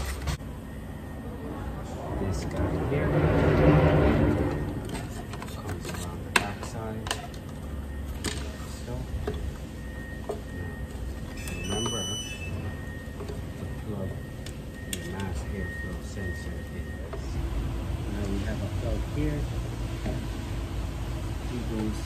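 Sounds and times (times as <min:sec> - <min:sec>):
low background hum: 0:00.0 - 0:22.0
clicks of handling engine parts: 0:04.7 - 0:08.6.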